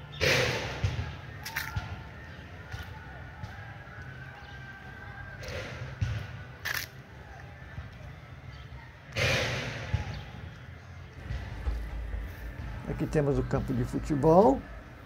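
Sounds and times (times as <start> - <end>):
faint distant voices: 0.0 - 15.0
low rumble on microphone: 11.2 - 15.0.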